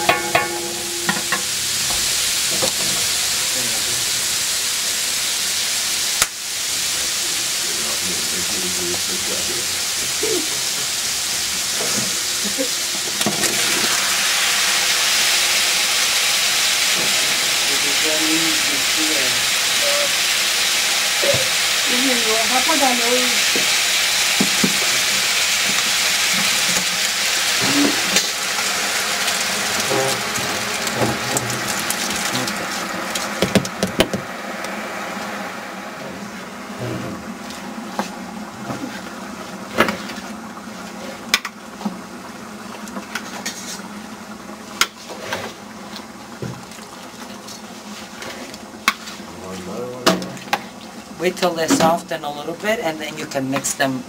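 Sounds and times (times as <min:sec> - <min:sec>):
food sizzling in a pot: 0:00.0 - 0:54.0.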